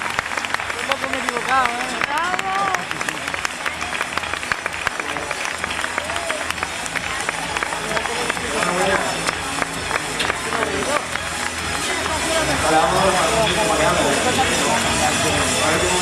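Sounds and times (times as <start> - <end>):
audience applauding and cheering: 0.0 - 16.0
music playing: 0.0 - 16.0
scattered voices: 6.8 - 16.0.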